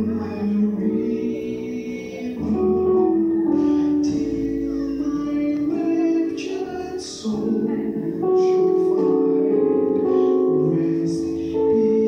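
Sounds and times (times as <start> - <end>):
man singing a hymn over speakers: 0.0 - 12.0.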